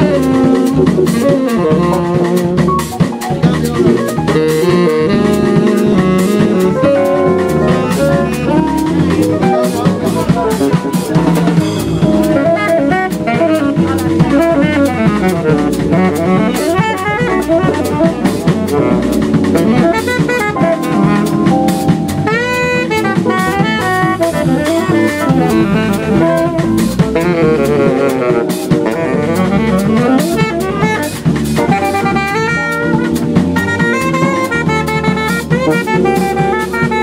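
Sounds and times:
drums and cymbals: 0:00.0 - 0:37.0
electric bass: 0:00.0 - 0:37.0
piano: 0:00.0 - 0:37.0
tenor saxophone soloing: 0:00.0 - 0:37.0.

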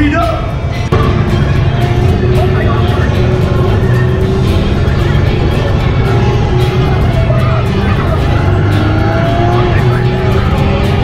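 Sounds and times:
music: 0:00.0 - 0:11.0
ride car rumbling along track: 0:00.0 - 0:11.0.

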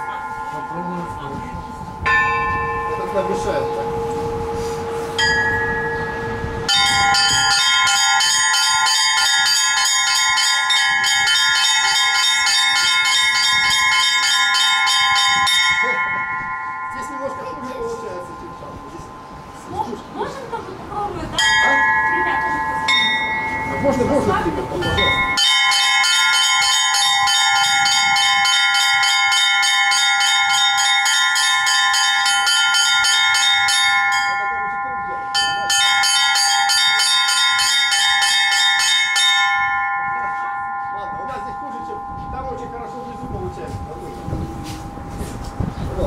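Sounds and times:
small chiming bells: 0:00.0 - 0:46.0.

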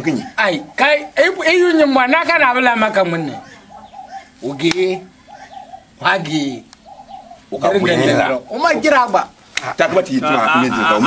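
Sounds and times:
dove cooing: 0:00.0 - 0:09.1
men's voices: 0:00.0 - 0:11.0.

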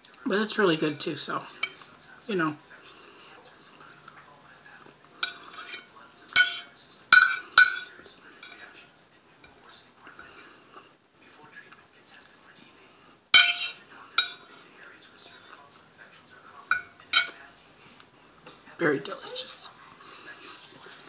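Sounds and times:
cutlery clinking on a plate: 0:01.5 - 0:01.9, 0:05.2 - 0:08.8, 0:13.4 - 0:14.6, 0:16.6 - 0:17.5.

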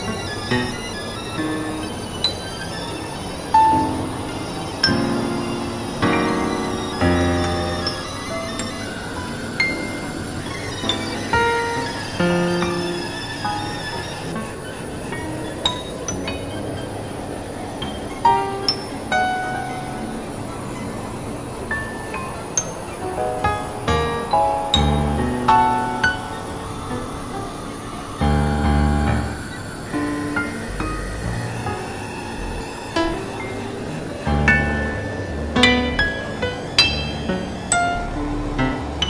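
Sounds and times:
hissing noise texture: 0:00.0 - 0:39.0
squealing synth chord: 0:00.0 - 0:39.0
noisy synthesizer drone: 0:16.0 - 0:39.0.

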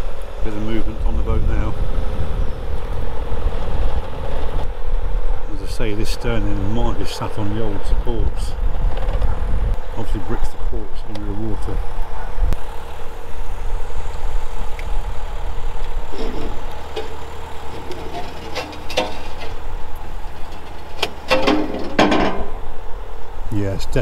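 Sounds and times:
crane engine humming: 0:09.4 - 0:23.9.

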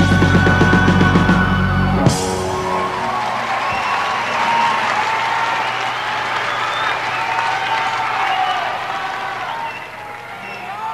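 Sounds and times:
audience applauding and cheering: 0:00.0 - 0:10.9.

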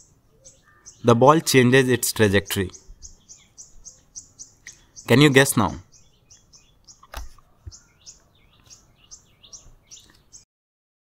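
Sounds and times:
bird chirping faintly: 0:00.0 - 0:10.5.

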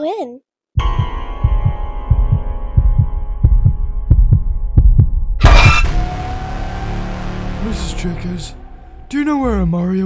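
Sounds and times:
heartbeat thumps: 0:00.8 - 0:05.4
loud noisy hit: 0:05.4 - 0:09.4
droning chord: 0:05.8 - 0:10.0.

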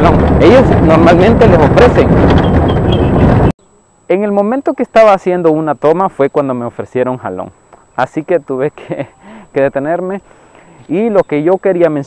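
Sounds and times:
pickup truck rumble: 0:00.0 - 0:03.5
wind buffeting microphone: 0:00.0 - 0:03.5.

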